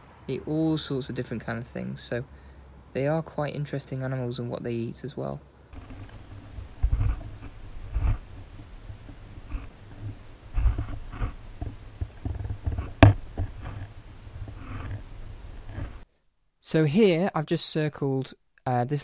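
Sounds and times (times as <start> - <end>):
muffled underwater rumbles and knocks: 5.8 - 16.0.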